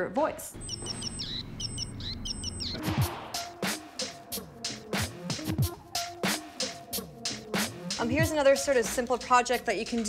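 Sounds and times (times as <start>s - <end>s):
electronic bird chirping from buzzer: 0.6s - 2.9s.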